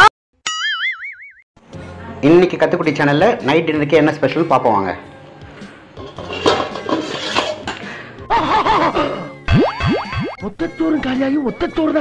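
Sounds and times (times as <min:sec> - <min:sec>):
cartoon boing: 0:00.5 - 0:01.4, 0:09.5 - 0:10.4.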